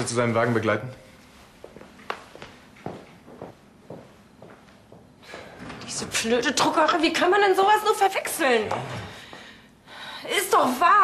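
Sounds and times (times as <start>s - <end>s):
footsteps on wooden floor: 1.6s - 5.8s.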